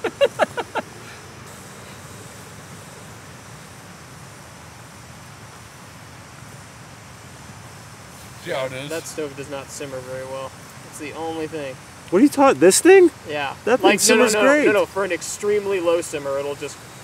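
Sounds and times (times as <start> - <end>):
gas stove hissing: 0.0 - 17.0.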